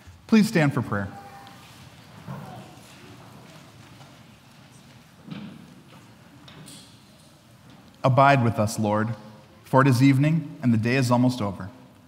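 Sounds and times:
faint shuffling: 0:00.0 - 0:08.6.

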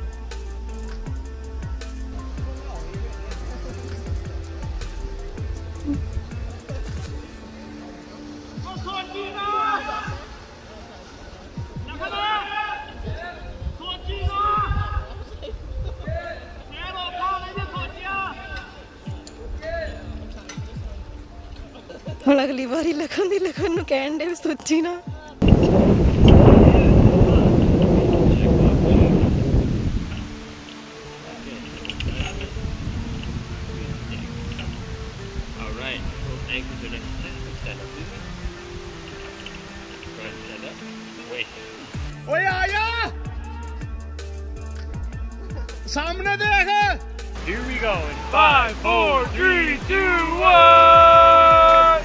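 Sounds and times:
faint background music: 0:00.0 - 0:52.0
wind buffeting microphone: 0:01.0 - 0:07.3, 0:10.0 - 0:22.2, 0:25.4 - 0:40.4.

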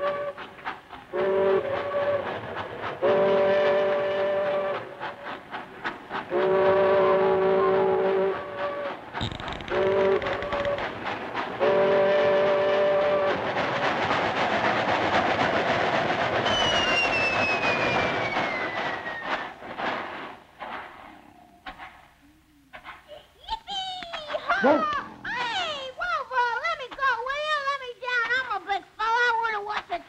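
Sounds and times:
train whistle chord: 0:00.0 - 0:00.5, 0:01.1 - 0:02.4, 0:03.0 - 0:05.3, 0:06.3 - 0:09.0, 0:11.6 - 0:13.4
train rushing past: 0:00.0 - 0:23.0
whistling tone sliding down: 0:16.4 - 0:19.5.

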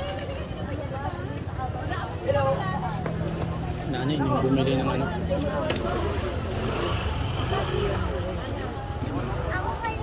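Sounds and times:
chatter of passers-by: 0:00.0 - 0:10.0.

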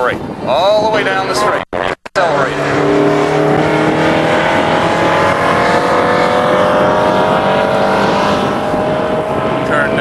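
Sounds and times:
car engine accelerating hard: 0:01.1 - 0:10.0.

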